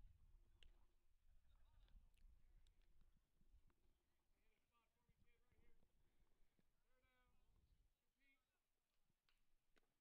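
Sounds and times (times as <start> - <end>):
faint distant voice: 6.6 - 7.6.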